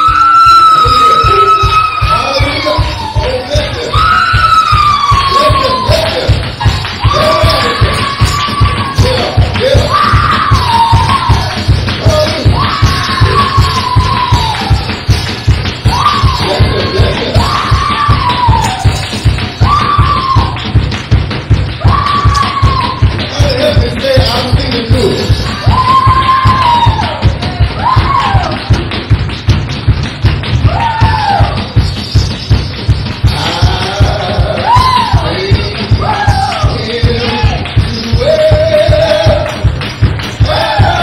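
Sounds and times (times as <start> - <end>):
kick drum beat: 0.0 - 41.0
man singing long high notes: 33.3 - 39.6.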